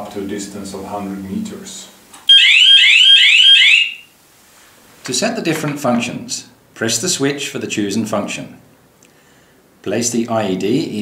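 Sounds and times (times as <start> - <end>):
electronic alarm rising sweep: 2.3 - 4.1.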